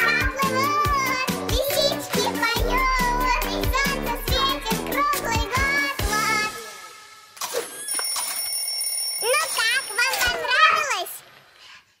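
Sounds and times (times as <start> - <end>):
toddler sing-song vocalizing: 0.0 - 6.7.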